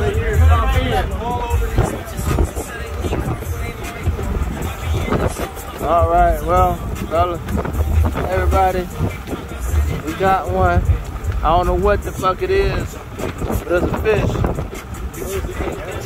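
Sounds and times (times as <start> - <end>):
boat engine rumbling: 0.0 - 16.0
wind on microphone: 0.0 - 16.0.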